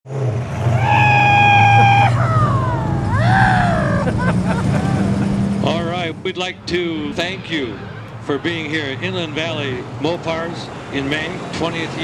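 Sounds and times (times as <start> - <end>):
car engine low rumble: 0.1 - 7.4.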